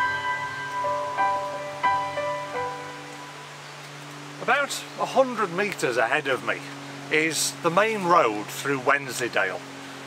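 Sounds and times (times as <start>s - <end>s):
gentle ringing struck notes music: 0.0s - 4.2s.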